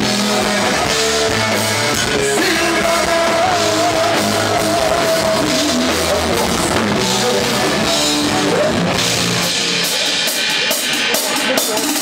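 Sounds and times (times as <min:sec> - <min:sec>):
drum and cymbal hits: 0:00.0 - 0:12.0
live rock band: 0:00.0 - 0:12.0.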